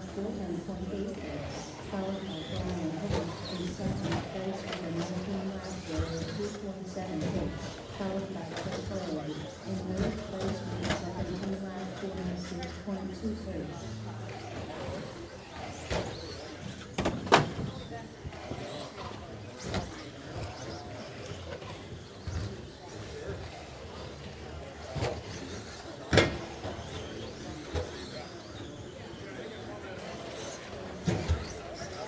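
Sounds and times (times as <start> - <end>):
voices: 0.0 - 32.0.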